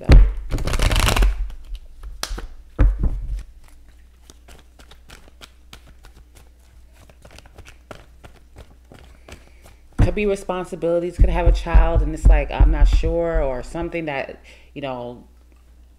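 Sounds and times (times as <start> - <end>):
cards being shuffled: 0.2 - 10.0.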